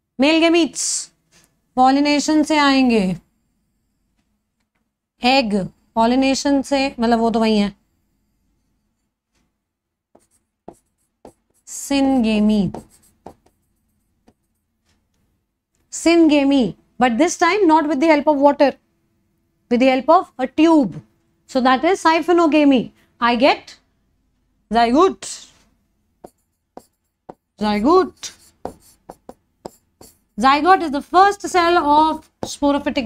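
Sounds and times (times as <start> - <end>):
woman speaking: 1.8 - 3.2, 5.2 - 7.8, 11.7 - 13.0, 19.7 - 23.8, 24.7 - 25.5, 27.6 - 28.4, 30.4 - 33.0
chalk tapping and scraping: 10.1 - 15.0, 26.2 - 32.9
person speaking: 10.2 - 14.4, 26.2 - 33.0.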